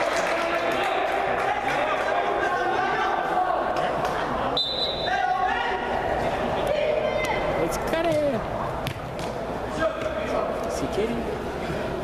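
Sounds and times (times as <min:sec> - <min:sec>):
players shouting in hall: 0:00.0 - 0:07.6
high whistle blast: 0:04.6 - 0:05.2.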